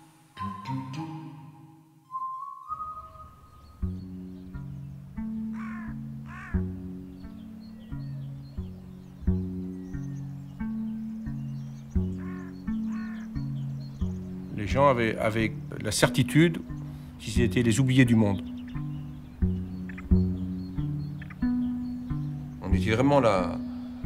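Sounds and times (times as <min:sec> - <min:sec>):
music with repeating low notes: 0:03.8 - 0:24.0
crows cawing: 0:05.2 - 0:07.5, 0:11.8 - 0:14.4, 0:18.5 - 0:21.7.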